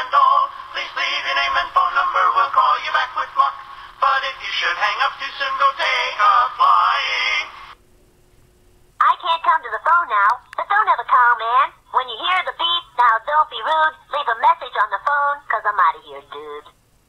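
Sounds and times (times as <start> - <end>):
person singing over music: 0.0 - 7.6.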